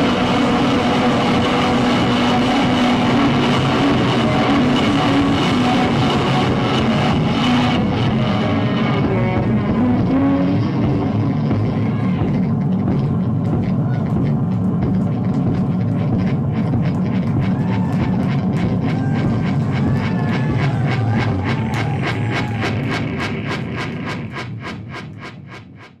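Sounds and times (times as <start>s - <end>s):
fast regular clicks: 0.0s - 26.0s
low rumbling drone: 0.0s - 26.0s
warbling tones: 0.0s - 26.0s.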